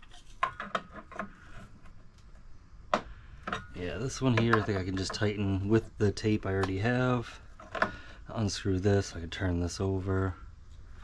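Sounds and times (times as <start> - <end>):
metal pipe fittings handling: 0.0 - 2.0, 2.9 - 5.4, 7.5 - 8.0.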